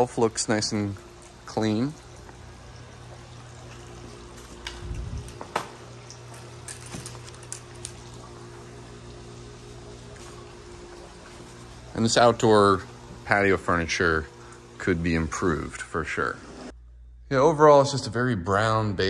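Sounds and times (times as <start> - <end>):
water running into pool: 0.0 - 16.7
pool pump humming: 0.0 - 19.0.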